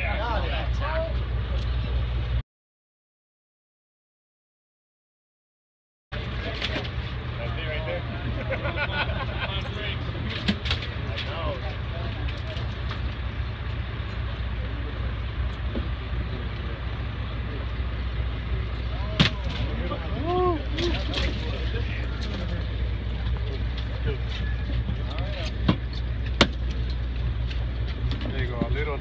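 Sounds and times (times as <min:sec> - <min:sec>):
boat engine droning: 0:00.0 - 0:02.4, 0:06.2 - 0:29.0.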